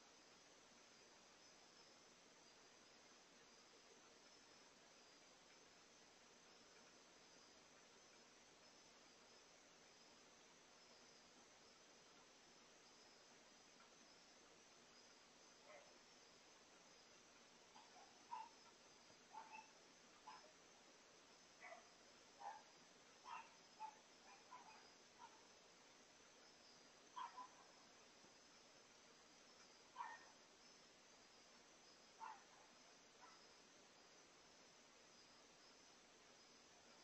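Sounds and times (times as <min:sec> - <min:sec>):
night insects chorus: 0:00.0 - 0:37.0.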